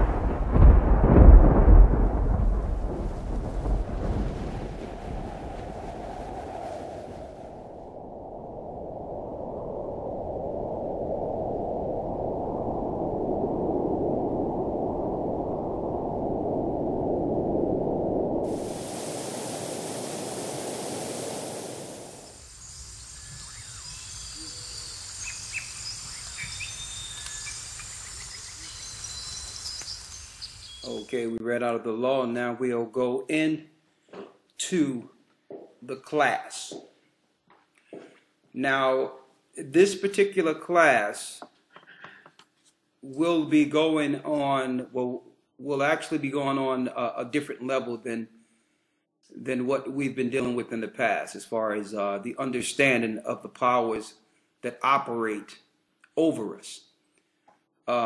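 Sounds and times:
thunder crash: 0.0 - 10.3, 12.8 - 22.4
long rushing noise: 2.4 - 30.6
quiet hiss with faint high tones: 17.8 - 33.9.

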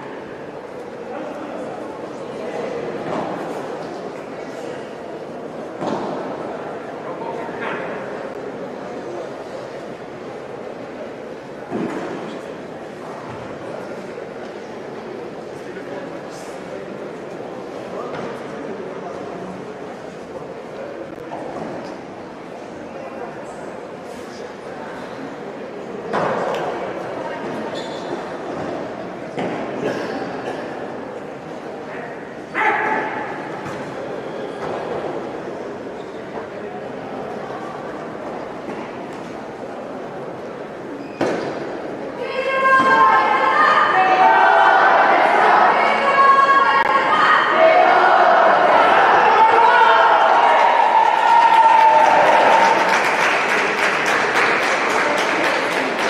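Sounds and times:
murmur of sports hall: 0.0 - 56.0
loud sharp shout: 32.5 - 33.5, 42.2 - 53.0.

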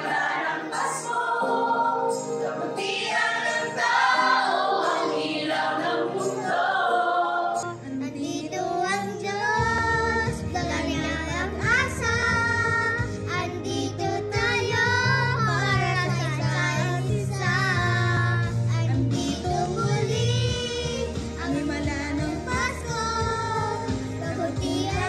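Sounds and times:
girls and woman singing: 0.0 - 25.0
recorded backing track: 0.0 - 25.0.

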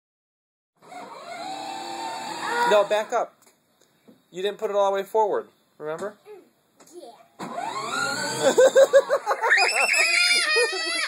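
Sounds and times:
toy car electric motor whine: 0.8 - 3.1, 7.4 - 9.0, 9.6 - 11.0.

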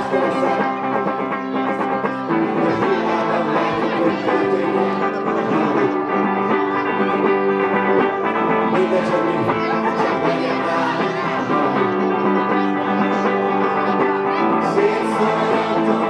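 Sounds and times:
rock band playing instrumental: 0.0 - 16.0.

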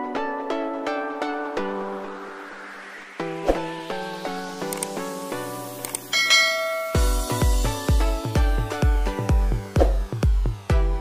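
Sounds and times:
plucked-note background music: 3.2 - 11.0
bright bell chime: 6.1 - 7.6.

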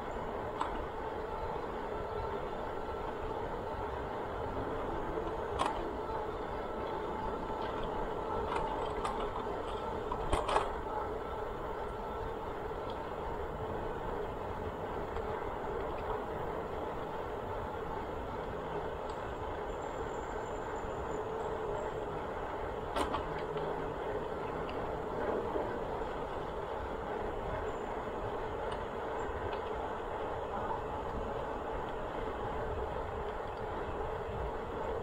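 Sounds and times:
bicycle tyres on pavement: 0.0 - 35.0.

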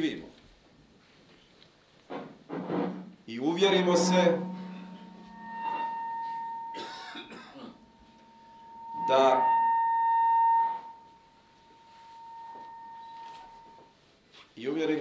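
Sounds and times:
high-pitched feedback ringing: 3.0 - 13.9.

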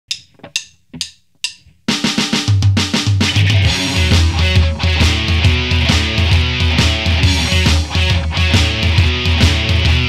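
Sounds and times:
rock band playing pop-punk: 2.4 - 10.0.

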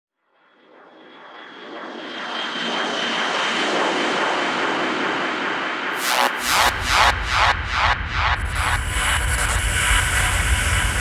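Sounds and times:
synthesized rushing noise: 5.9 - 11.0.

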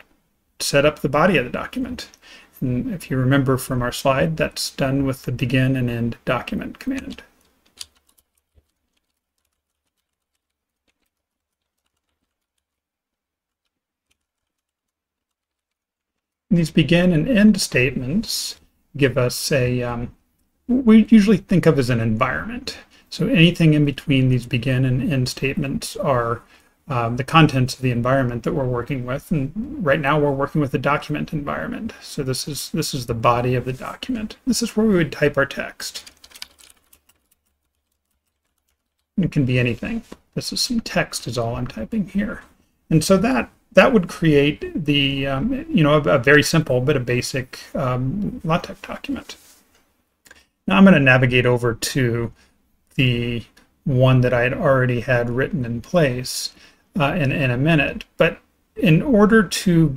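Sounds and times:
faint keyboard typing: 6.2 - 16.5, 33.7 - 40.3.

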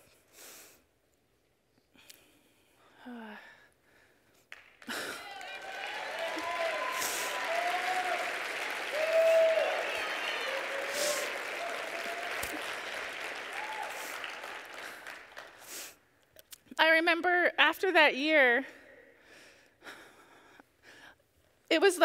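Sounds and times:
audience applauding: 4.5 - 15.9
crowd shouting: 5.2 - 14.1.

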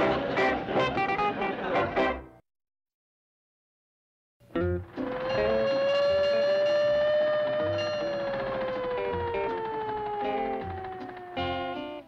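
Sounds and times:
bluegrass string music: 0.0 - 2.4
fire engine siren wail: 5.0 - 12.0.

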